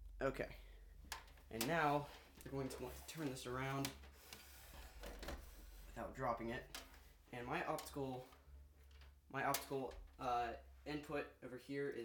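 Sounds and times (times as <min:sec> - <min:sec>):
low steady hum: 0:00.0 - 0:03.7.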